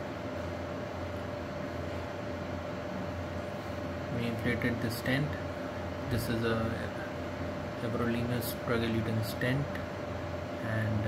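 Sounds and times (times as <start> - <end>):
low room hum: 0.0 - 11.0
thin steady whine: 0.0 - 11.0.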